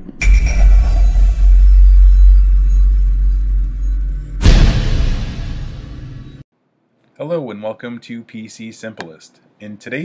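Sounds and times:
deep bass rumble: 0.0 - 6.4
high electronic tones: 0.0 - 6.4.

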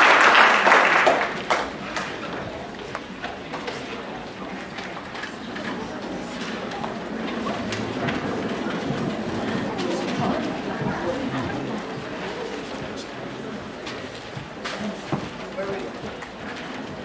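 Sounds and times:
audience chatter: 0.0 - 17.0
footsteps and knocks: 6.3 - 17.0.

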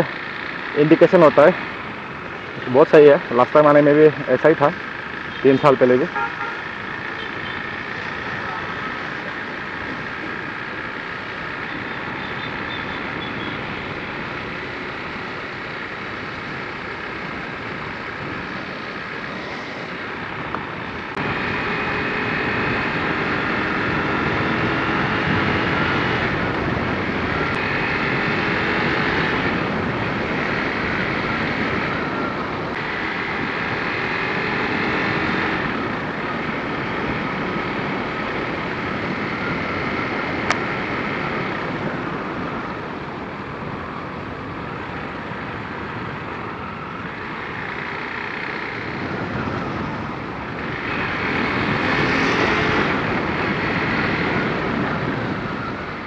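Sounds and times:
motorcycle engine running: 0.0 - 56.0
road noise: 0.0 - 56.0
wind noise: 11.6 - 47.9, 48.5 - 56.0.

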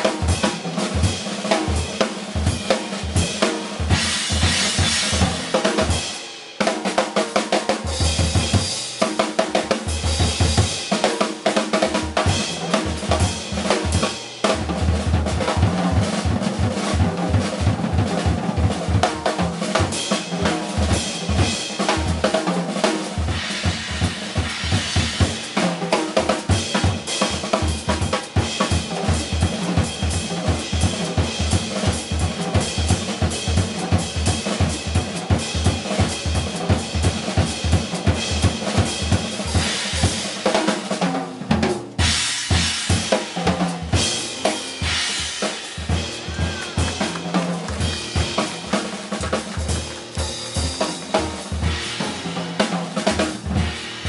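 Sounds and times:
drum kit: 0.0 - 54.0
acoustic piano: 44.0 - 54.0
upright double bass: 45.8 - 54.0.

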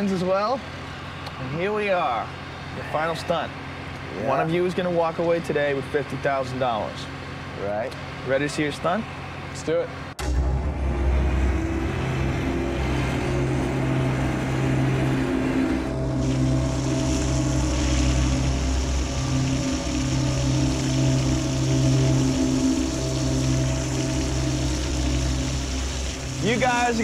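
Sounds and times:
crane mechanical hum: 0.0 - 27.0
water streaming off car: 11.0 - 27.0.

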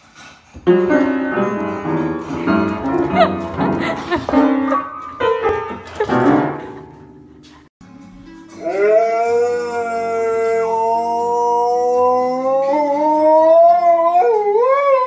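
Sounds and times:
dog howling: 8.6 - 15.0.

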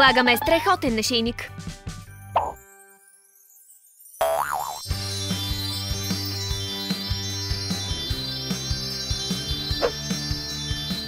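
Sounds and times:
high shimmering sparkle: 2.7 - 4.2.

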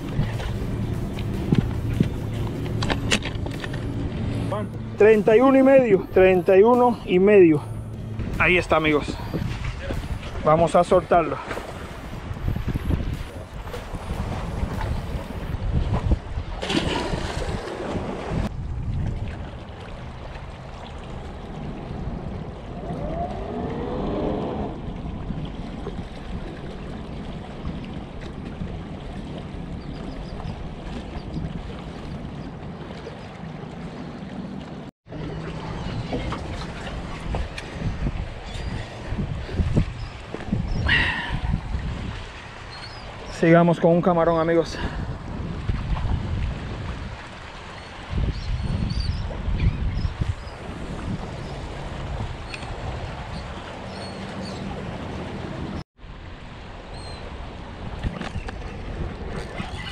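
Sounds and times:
boat engines droning: 0.0 - 15.6, 19.6 - 41.6, 50.5 - 59.9
wind buffeting microphone: 0.0 - 34.3, 35.1 - 43.4, 44.3 - 59.9.

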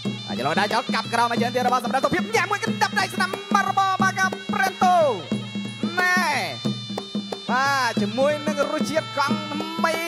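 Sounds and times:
drum beat: 0.0 - 10.0
reed pipe sliding melody: 0.0 - 10.0.

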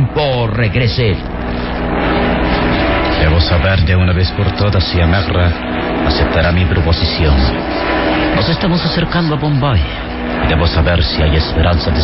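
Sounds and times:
airplane engine drone: 0.0 - 12.0.

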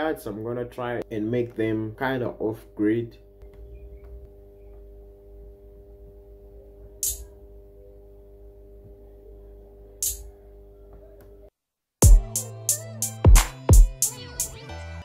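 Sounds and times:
faint steady hum: 0.0 - 11.5
electronic hi-hat hits: 7.0 - 7.3, 10.0 - 10.2, 12.0 - 14.5.

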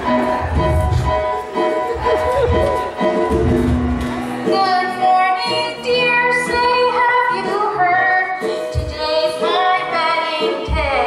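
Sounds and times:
musical accompaniment: 0.0 - 11.0
woman singing: 4.5 - 11.0.

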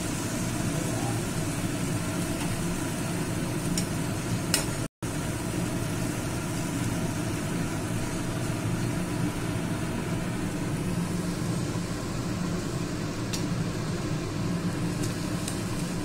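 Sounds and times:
food sizzling in hot oil: 0.0 - 16.0.

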